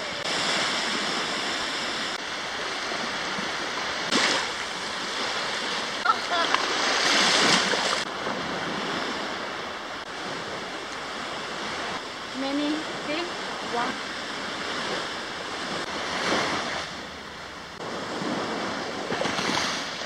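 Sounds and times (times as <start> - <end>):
waves washing onto sandy beach: 0.0 - 20.0.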